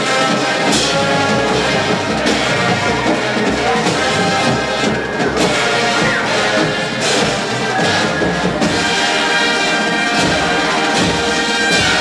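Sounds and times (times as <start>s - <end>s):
brass ensemble: 0.0s - 12.0s
marching drumline: 0.0s - 12.0s.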